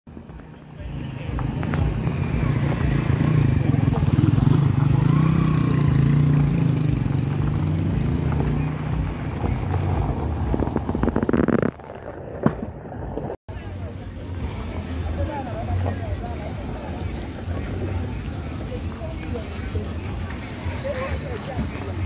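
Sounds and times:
vehicle engines on gravel road: 0.1s - 13.4s, 17.1s - 22.0s
rapid crackling: 9.1s - 13.4s.

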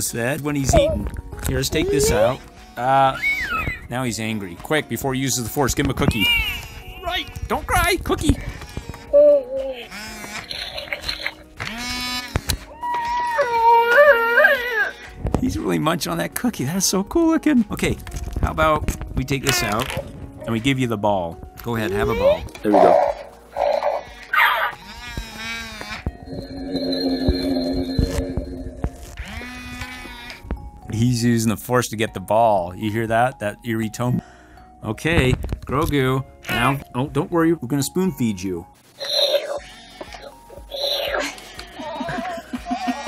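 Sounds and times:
baby-like cooing call: 1.8s - 2.4s, 9.1s - 9.9s, 12.8s - 14.9s
toy baby-like vocal sound: 1.8s - 2.4s, 39.0s - 42.1s
toy munching noises: 9.6s - 12.2s
eerie steady tone: 26.2s - 29.2s.

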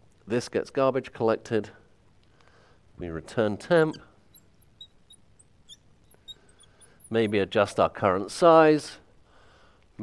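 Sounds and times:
marker squeaking on glass: 3.6s - 7.8s.

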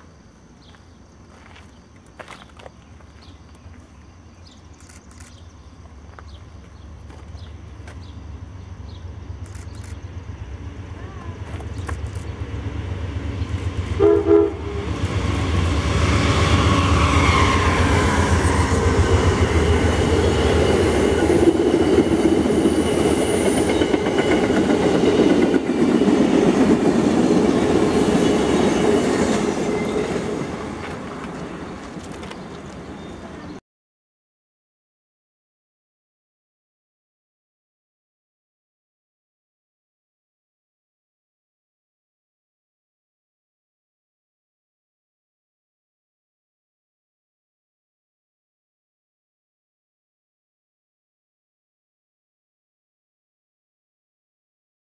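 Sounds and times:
train wheels on rails: 0.0s - 33.6s
locomotive rumble: 1.3s - 33.6s
train horn blast: 14.0s - 15.4s.

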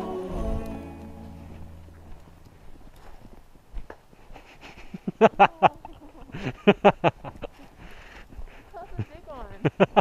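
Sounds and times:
footsteps crunching in snow: 0.3s - 10.0s.

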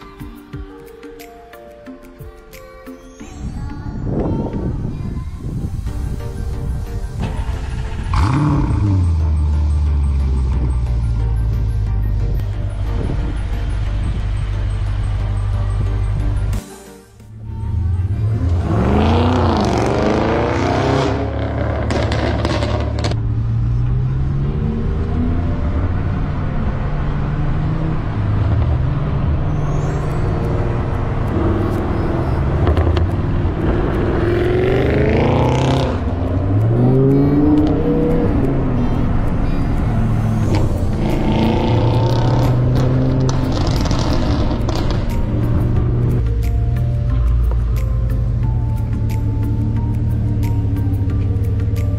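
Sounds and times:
background music: 0.0s - 51.9s
car engines accelerating hard: 7.2s - 16.5s, 17.8s - 51.9s.

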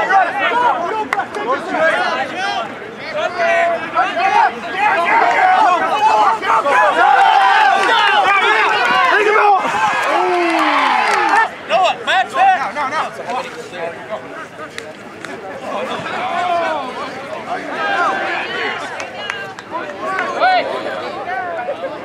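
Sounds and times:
crowd and players shouting and cheering: 0.0s - 22.0s.

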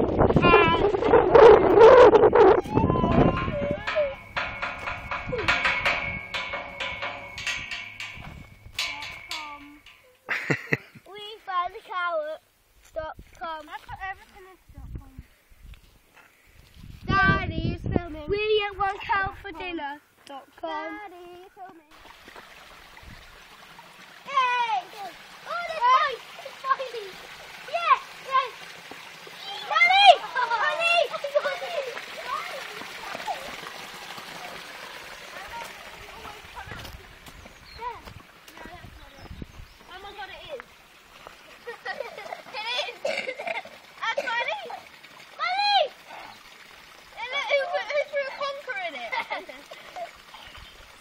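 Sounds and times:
child calling in sing-song: 0.4s - 4.2s.

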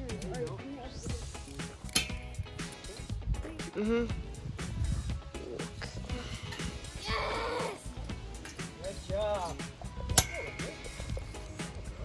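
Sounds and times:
metal spring clang: 1.8s - 2.4s, 9.5s - 10.8s.

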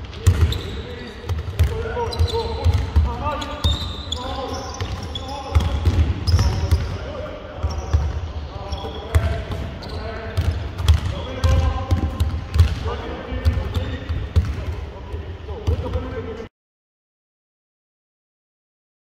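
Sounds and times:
basketballs bouncing on hardwood: 0.2s - 4.0s, 4.7s - 7.0s, 9.1s - 14.7s.

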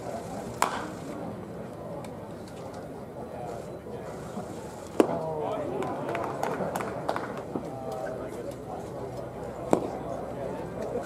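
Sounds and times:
people talking in stands: 0.0s - 11.0s
sharp crack of bat on ball: 0.6s - 0.9s.

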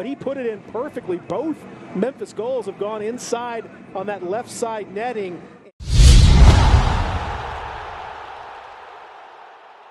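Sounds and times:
deep boom sound effect: 5.8s - 8.1s.

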